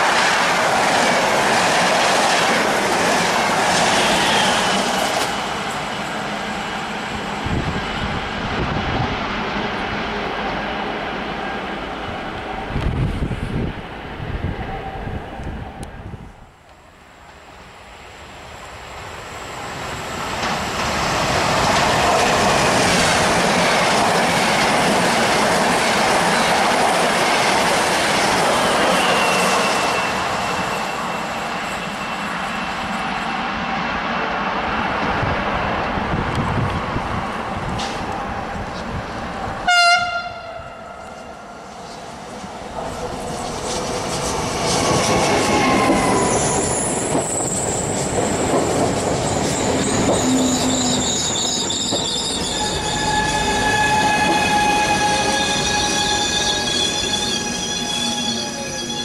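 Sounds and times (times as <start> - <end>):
electric train rolling roar: 0.0 - 59.0.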